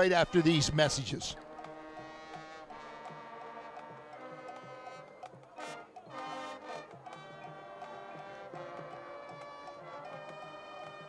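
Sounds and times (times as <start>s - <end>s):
faint marching band music: 0.0s - 11.0s.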